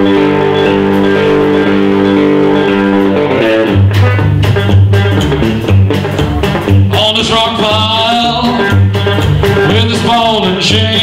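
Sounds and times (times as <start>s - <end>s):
electric guitar: 0.0s - 11.0s
live rockabilly band: 0.0s - 11.0s.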